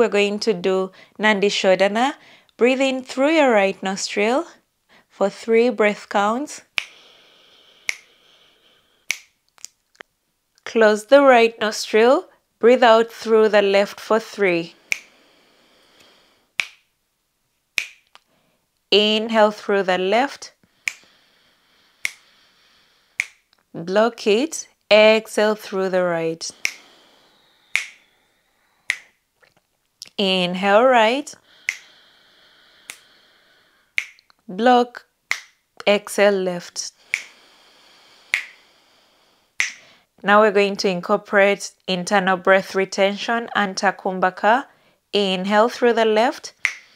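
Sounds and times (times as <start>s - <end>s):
faint steady hiss: 0.0s - 46.9s
finger snaps: 6.6s - 7.0s, 7.8s - 8.1s, 9.1s - 10.1s, 14.9s - 15.1s, 16.0s - 16.9s, 17.8s - 18.3s, 20.8s - 21.1s, 22.0s - 22.2s, 23.2s - 23.6s, 26.5s - 26.9s, 27.7s - 28.1s, 28.9s - 29.2s, 31.6s - 31.9s, 32.8s - 33.1s, 34.0s - 34.4s, 35.3s - 35.6s, 37.0s - 37.4s, 38.3s - 38.6s, 39.6s - 39.8s, 46.5s - 46.9s
breath hissing through nostril: 6.8s - 9.1s, 14.8s - 16.6s, 20.6s - 23.5s, 26.5s - 28.9s, 31.4s - 34.0s, 37.0s - 40.1s.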